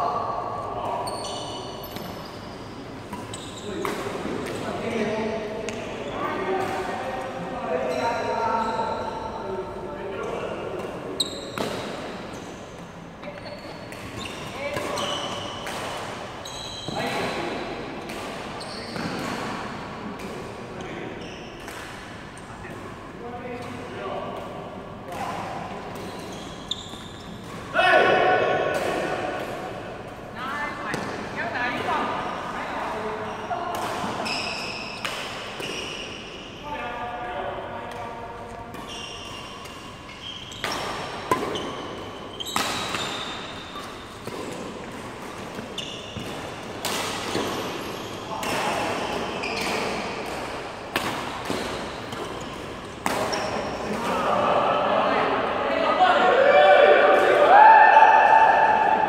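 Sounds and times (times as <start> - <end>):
racket striking shuttlecock: 39.5 - 47.6.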